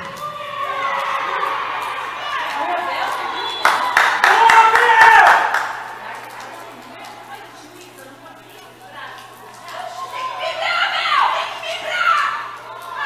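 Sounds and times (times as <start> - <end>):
people shouting and cheering: 0.0 - 6.9, 9.5 - 13.0.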